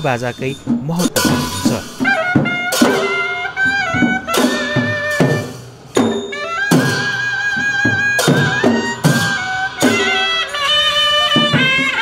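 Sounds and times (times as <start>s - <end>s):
double-reed shawm melody: 0.0s - 12.0s
sharp drum strokes: 0.3s - 12.0s.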